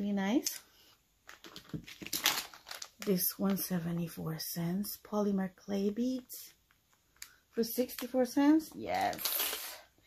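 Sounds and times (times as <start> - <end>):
beads shifting: 1.2 - 3.6
plastic bag crinkling: 1.2 - 3.6, 8.9 - 9.8.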